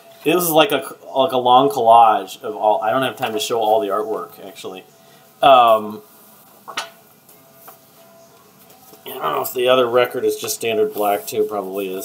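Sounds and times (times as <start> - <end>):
record sleeves handling noise: 6.4 - 9.4.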